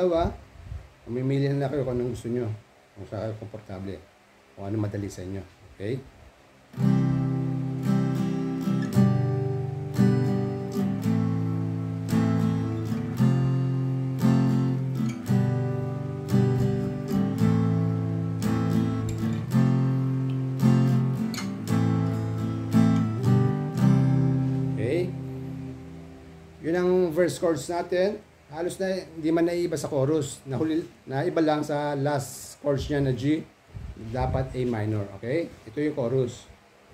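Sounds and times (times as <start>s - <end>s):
acoustic guitar strumming: 6.7s - 28.3s.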